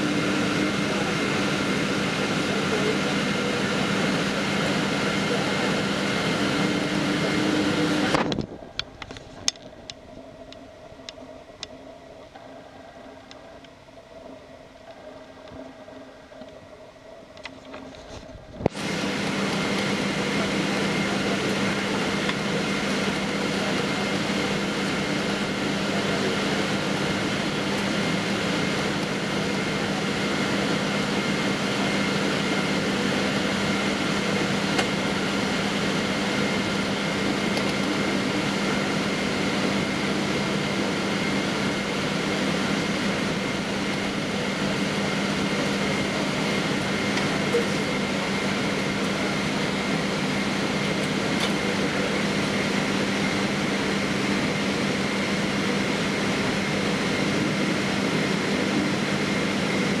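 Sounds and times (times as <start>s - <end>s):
jet engines idling: 0.0s - 60.0s.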